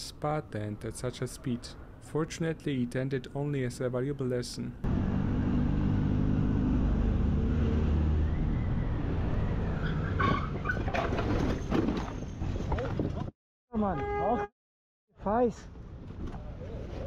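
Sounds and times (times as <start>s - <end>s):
road and wind noise: 0.0s - 13.3s, 15.3s - 17.0s.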